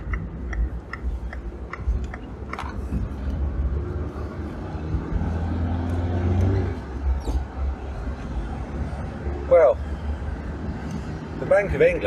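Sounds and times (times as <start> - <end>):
car engine and tyre rumble: 0.0 - 12.0.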